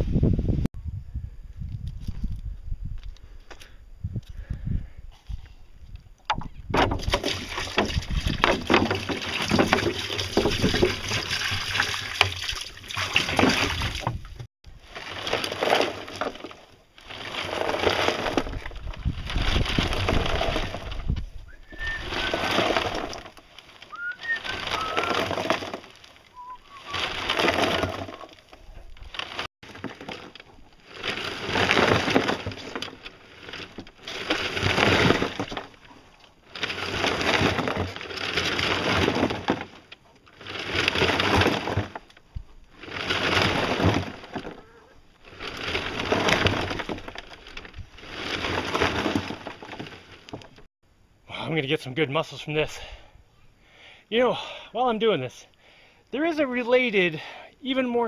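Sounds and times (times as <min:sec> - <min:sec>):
concrete sloshing in barrel mixer: 0:06.7 - 0:50.7.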